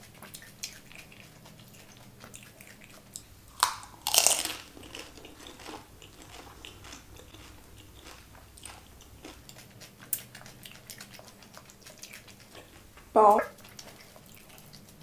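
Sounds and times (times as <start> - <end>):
quiet chewing with clicks: 0.0 - 15.0
crisp shell crunching: 3.5 - 9.4.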